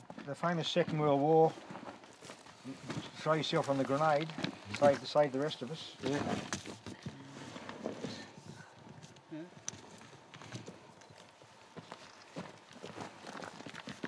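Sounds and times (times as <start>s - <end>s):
boot footsteps on loose shale: 0.0s - 7.0s, 9.8s - 14.0s.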